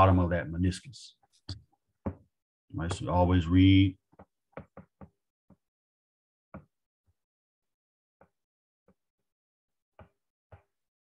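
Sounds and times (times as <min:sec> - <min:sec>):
stylus tapping on glass screen: 0:04.1 - 0:05.6.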